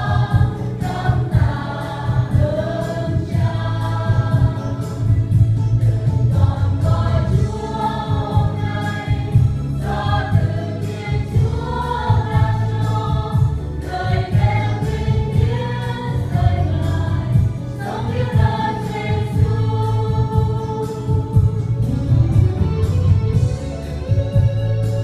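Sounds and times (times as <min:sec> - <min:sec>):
instrumental accompaniment with beat: 0:00.0 - 0:25.0
mixed choir singing gospel: 0:00.0 - 0:25.0.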